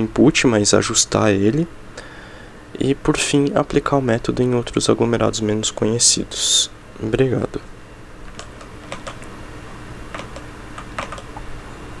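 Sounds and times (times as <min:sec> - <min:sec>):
computer keyboard keystrokes: 0:08.3 - 0:09.3, 0:10.1 - 0:11.4.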